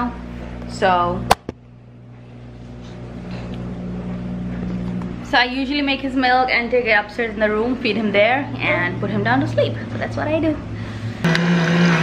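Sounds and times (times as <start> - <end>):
low electrical hum: 0.0 - 11.3.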